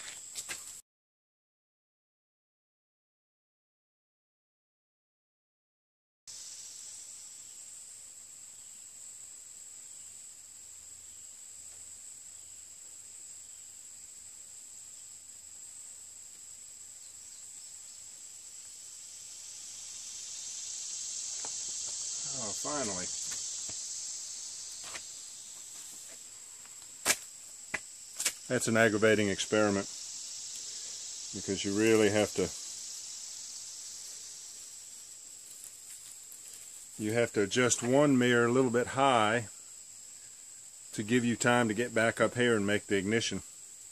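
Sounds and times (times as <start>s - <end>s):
insects droning: 0.0s - 0.8s, 6.3s - 43.9s.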